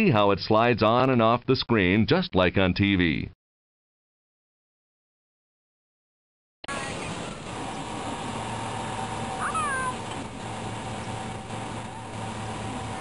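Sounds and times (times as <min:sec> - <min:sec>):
high squeaky call: 0:09.4 - 0:10.0.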